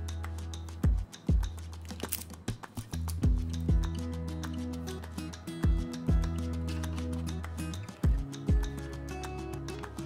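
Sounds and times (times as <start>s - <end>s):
bass drum beat in music: 0.0s - 10.0s.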